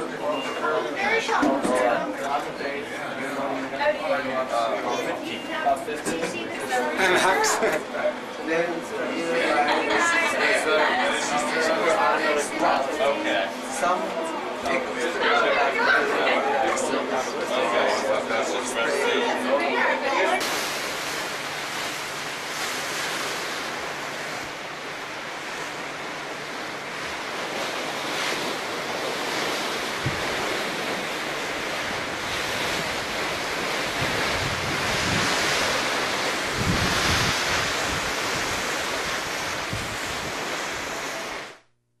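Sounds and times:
sea: 0.0 - 41.7
wind buffeting microphone: 29.1 - 41.3
wind rushing: 36.4 - 40.4.

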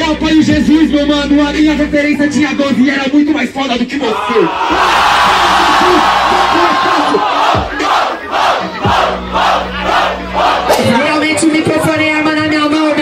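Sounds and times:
man's voice: 0.0 - 9.0, 9.6 - 13.0
crowd screaming: 4.0 - 10.8
crowd shouting in rhythm: 4.1 - 11.0.

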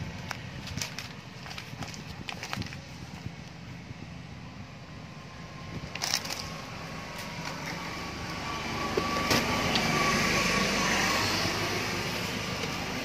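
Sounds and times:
passing vehicle engine and road noise: 0.0 - 13.0.

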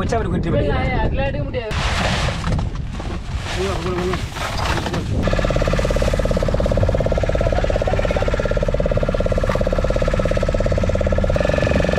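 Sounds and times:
boat engine throbbing: 4.5 - 11.9.

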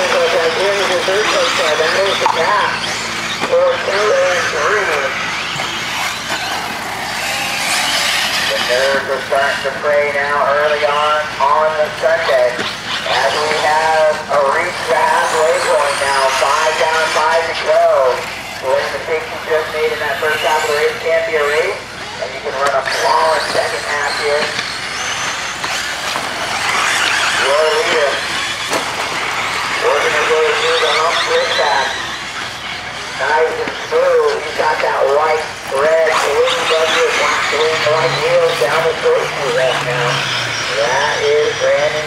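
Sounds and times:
muffled announcer over loudspeakers: 0.0 - 6.7, 8.3 - 28.7, 29.4 - 42.0
electric motors whining: 0.0 - 42.0.

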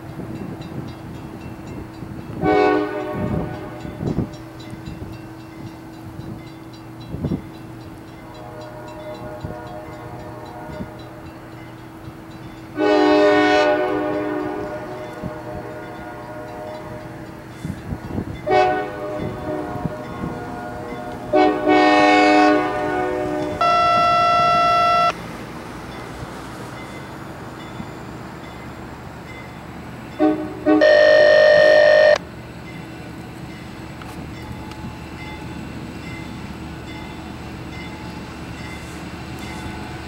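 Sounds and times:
low rumble of moving train: 0.0 - 40.0
train air horn blasts: 2.4 - 4.0, 8.2 - 11.2, 12.8 - 17.2, 18.4 - 25.2, 30.2 - 32.2
steady horn tone: 12.8 - 16.9, 18.5 - 25.2, 30.2 - 32.2.

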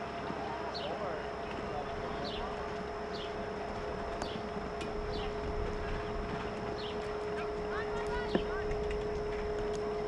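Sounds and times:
steady hum: 0.0 - 10.0
horse cantering on sand: 1.6 - 10.0
bird chirping: 3.1 - 3.4, 4.2 - 4.4, 5.0 - 5.4, 6.7 - 7.1.

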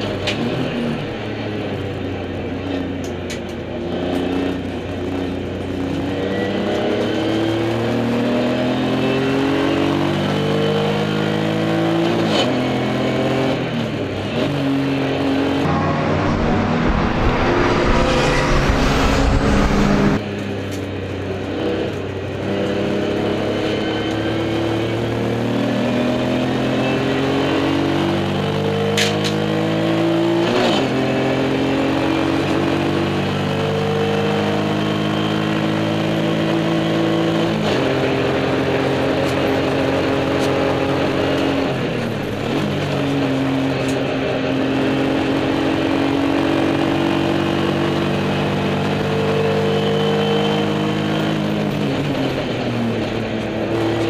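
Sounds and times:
race car engine revving: 3.9 - 20.2
loud rumbling noise: 15.6 - 20.4.

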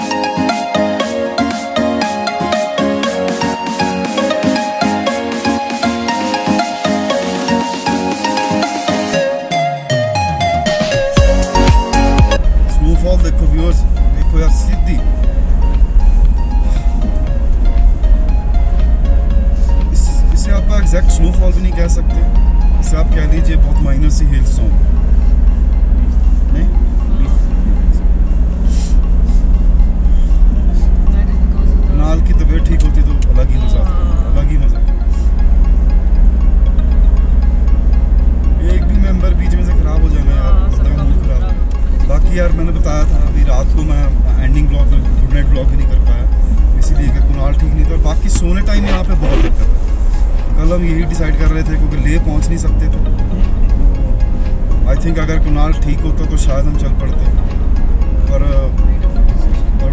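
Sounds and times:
song with heavy bass: 0.0 - 23.7, 46.2 - 51.2.

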